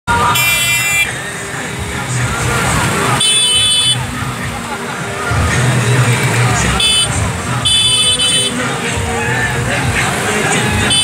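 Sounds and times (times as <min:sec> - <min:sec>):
street and crowd noise: 0:00.1 - 0:11.0
shrill horn blast: 0:06.8 - 0:08.6.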